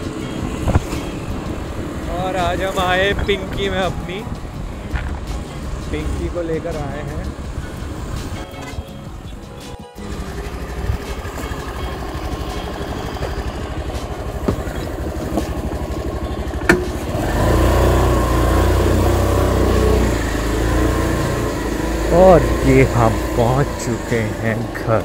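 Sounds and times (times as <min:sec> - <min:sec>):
scooter engine idling and revving: 0:00.0 - 0:25.0.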